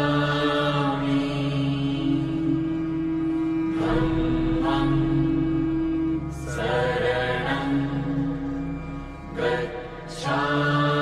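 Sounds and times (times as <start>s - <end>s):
music: 0.0s - 11.0s
person chanting long notes: 0.0s - 11.0s.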